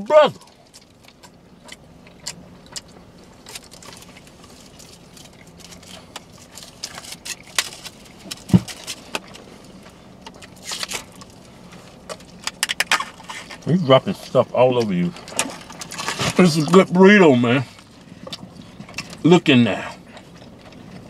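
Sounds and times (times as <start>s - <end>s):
chewing: 0.4s - 13.7s, 17.7s - 19.2s, 19.8s - 21.0s
paper wrapper crinkling: 3.4s - 11.5s.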